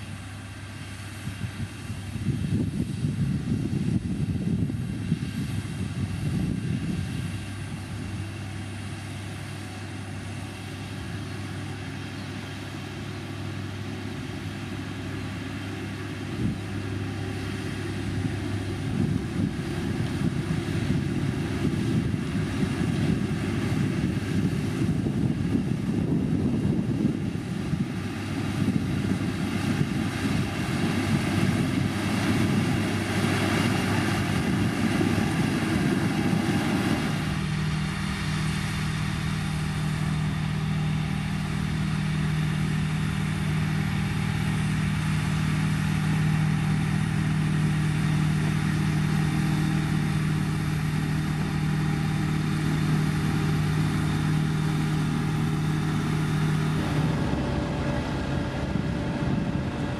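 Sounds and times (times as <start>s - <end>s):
diesel engine rumbling under load: 0.0s - 59.9s.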